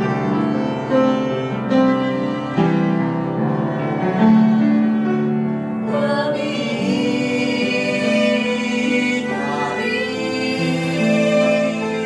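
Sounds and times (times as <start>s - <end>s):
bowed violin notes: 0.0s - 12.0s
piano accompaniment: 0.0s - 12.0s.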